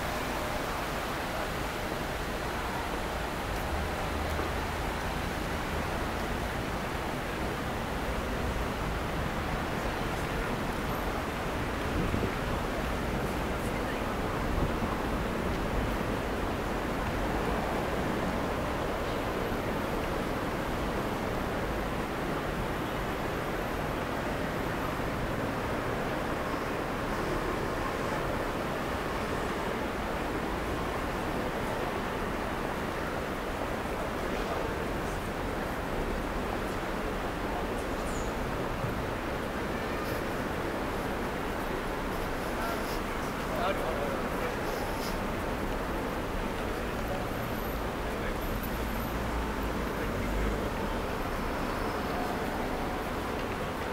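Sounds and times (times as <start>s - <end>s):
traffic noise: 0.0s - 53.9s
faint voices: 9.0s - 22.6s, 23.8s - 53.9s.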